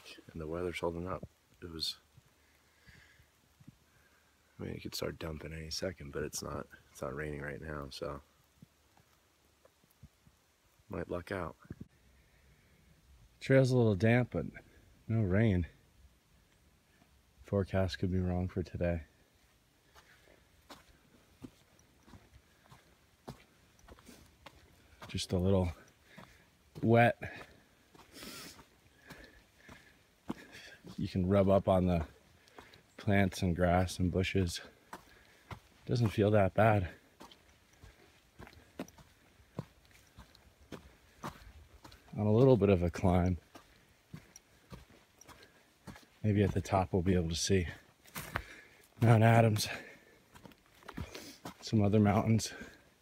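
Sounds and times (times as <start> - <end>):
footsteps on dirt trail: 0.0 - 10.3, 16.4 - 53.0.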